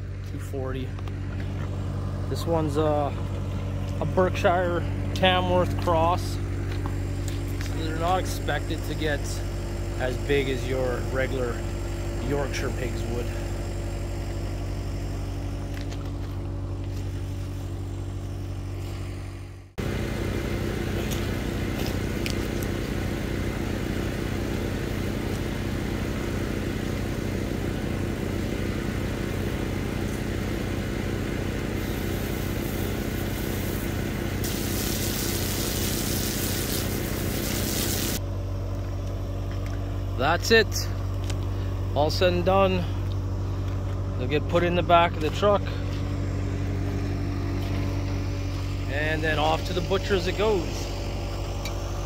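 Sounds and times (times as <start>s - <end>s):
vehicle engine idling: 0.0s - 52.0s
hiss: 31.8s - 38.2s.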